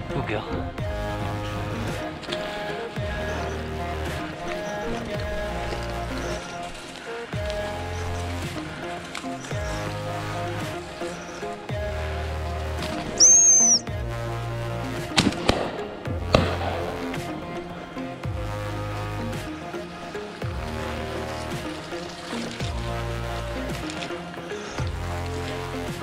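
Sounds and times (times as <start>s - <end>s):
background music with beat: 0.0s - 26.0s
shrill whistle blast: 13.2s - 13.9s
sharp cracks: 15.0s - 17.8s.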